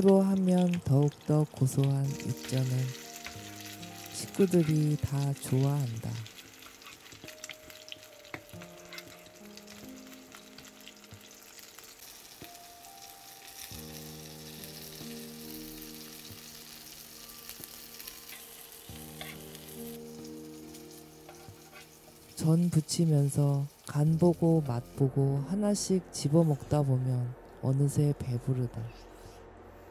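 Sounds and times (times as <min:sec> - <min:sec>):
batter sizzling in oil: 0:00.0 - 0:25.1
soft background music: 0:00.0 - 0:29.9.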